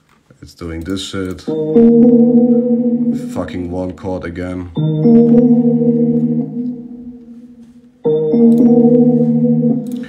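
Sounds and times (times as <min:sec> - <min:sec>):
keyboard chord held: 0:01.5 - 0:10.0.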